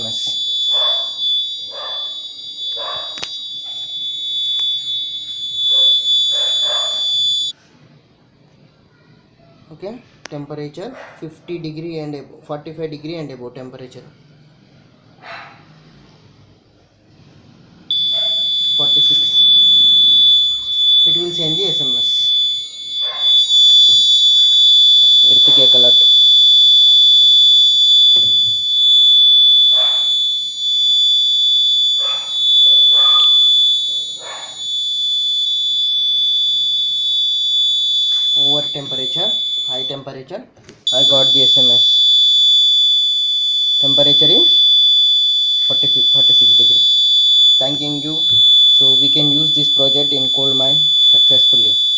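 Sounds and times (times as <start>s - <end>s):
high-pitched alarm buzzer: 0.0s - 7.6s, 17.9s - 40.1s, 40.9s - 51.9s.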